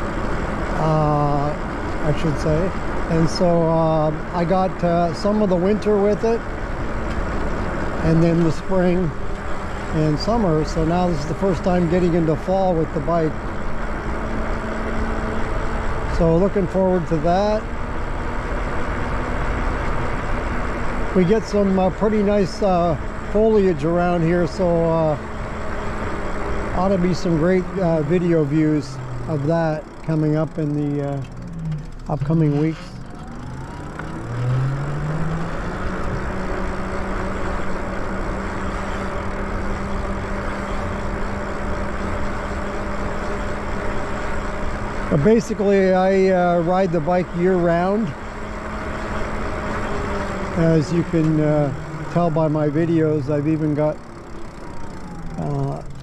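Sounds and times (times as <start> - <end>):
electric bike motor whine: 0.0 - 56.0
wind and road rush: 0.0 - 56.0.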